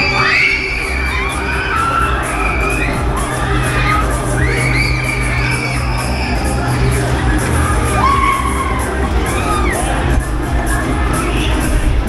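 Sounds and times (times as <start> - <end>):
riders screaming: 0.0 - 10.1
loud ride music with beat: 0.0 - 12.0.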